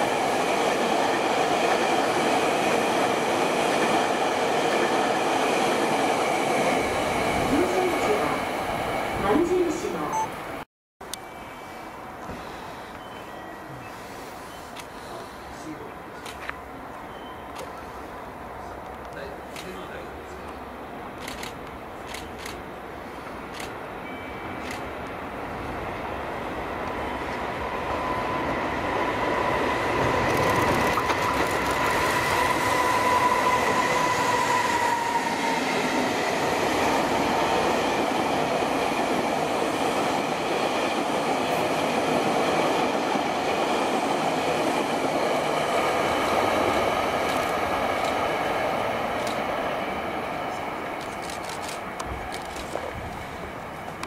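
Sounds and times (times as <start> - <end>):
train wheels rolling on rail: 0.0 - 10.0, 11.7 - 54.0.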